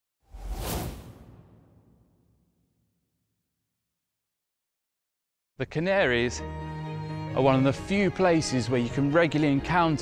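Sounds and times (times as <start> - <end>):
whoosh sound effect: 0.3 - 2.5.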